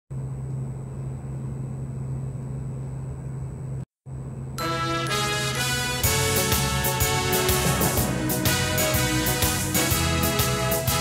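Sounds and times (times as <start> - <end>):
electric train running: 6.0 - 10.9.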